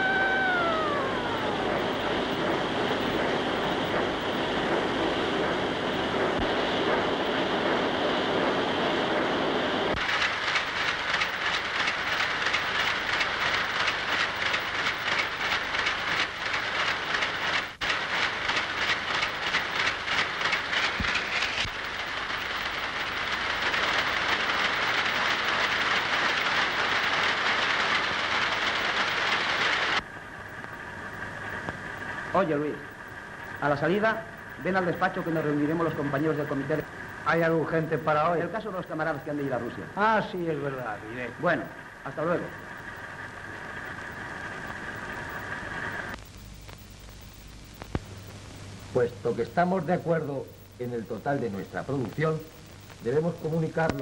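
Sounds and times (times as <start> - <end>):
motor whine: 0.0 - 4.4
fast even machine clatter: 0.0 - 46.2
steady mechanical din: 0.0 - 47.5.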